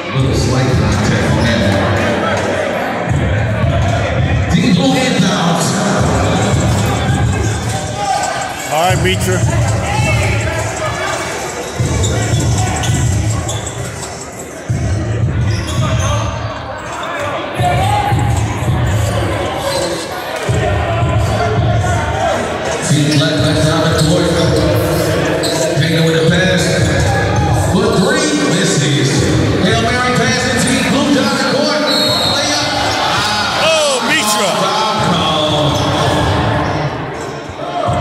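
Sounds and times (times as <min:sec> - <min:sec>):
crowd voices: 0:00.0 - 0:38.0.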